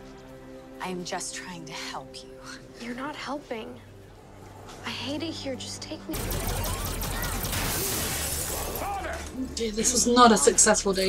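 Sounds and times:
arcade game noise: 6.1s - 9.4s
crowd chatter: 6.1s - 10.9s.

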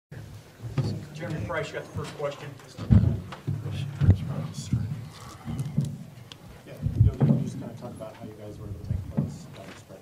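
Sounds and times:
microphone bumping knocks: 2.8s - 6.2s, 6.8s - 7.9s, 8.8s - 9.5s.

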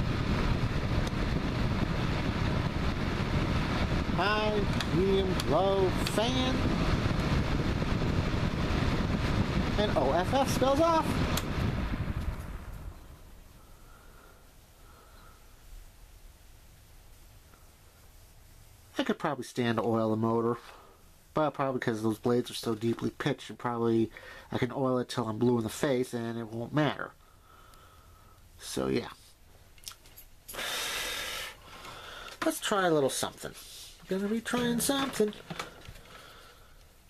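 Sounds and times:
fan heater spinning down: 0.0s - 29.1s, 30.4s - 37.0s
person exhaling with a hiss: 13.6s - 15.6s, 30.5s - 32.4s.

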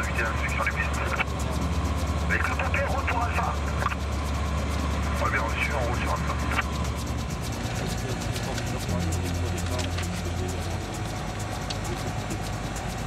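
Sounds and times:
propeller engine drone: 0.0s - 13.0s.

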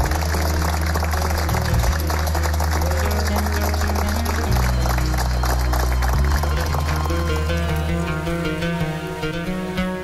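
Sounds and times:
held bass notes: 0.0s - 10.0s
live band playing: 0.0s - 10.0s.

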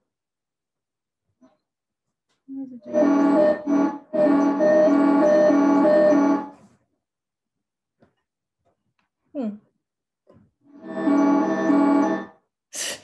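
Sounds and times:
buzzy synth tone: 2.8s - 6.6s, 10.7s - 12.4s.

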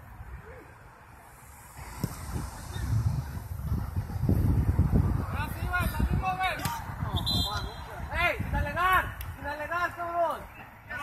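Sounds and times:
wind on microphone: 1.4s - 9.5s.

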